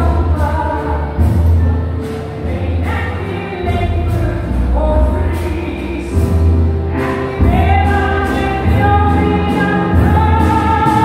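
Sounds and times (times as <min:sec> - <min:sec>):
double bass: 0:00.0 - 0:11.0
grand piano: 0:00.0 - 0:11.0.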